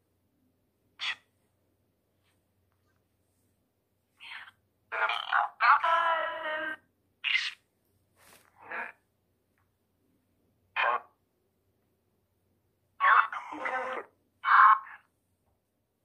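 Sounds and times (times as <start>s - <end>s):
garbled voice fragments from speaker: 1.0s - 1.3s, 4.2s - 7.6s, 8.5s - 9.0s, 10.8s - 11.2s, 13.0s - 15.1s.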